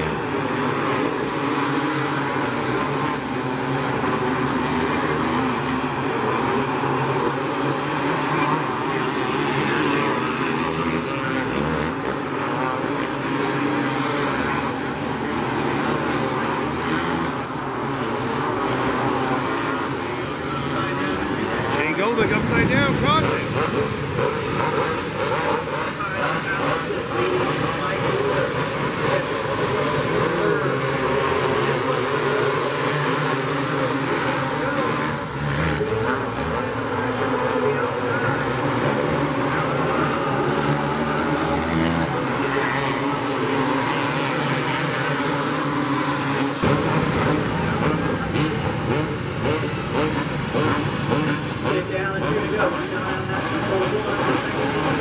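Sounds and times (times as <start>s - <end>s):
kart engines racing: 0.0s - 55.0s.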